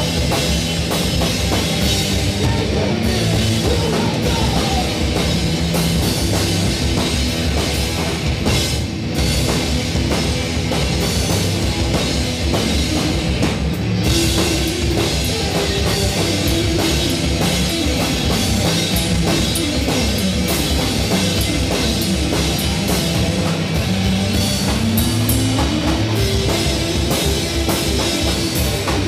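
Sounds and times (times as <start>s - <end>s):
busy drumming: 0.0s - 29.0s
electric guitar line: 0.0s - 29.0s
rock band playing live: 0.0s - 29.0s.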